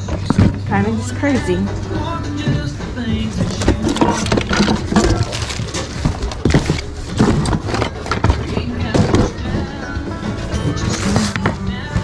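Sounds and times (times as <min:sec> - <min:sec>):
household items clacking in a bin: 0:00.0 - 0:01.7, 0:02.4 - 0:12.0
loud music from ceiling speaker: 0:00.0 - 0:12.0.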